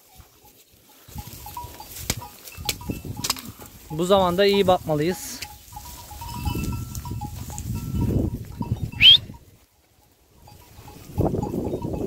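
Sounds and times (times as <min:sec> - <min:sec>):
rustling and crunching in dry grass: 0:00.0 - 0:12.0.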